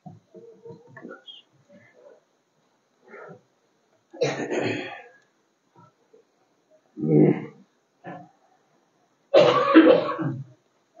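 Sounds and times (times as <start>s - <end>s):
person clearing throat: 4.2s - 5.1s, 9.4s - 10.5s.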